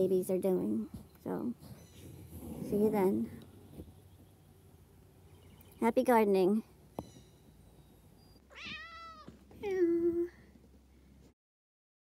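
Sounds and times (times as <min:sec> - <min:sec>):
cat meowing: 0:08.5 - 0:09.3.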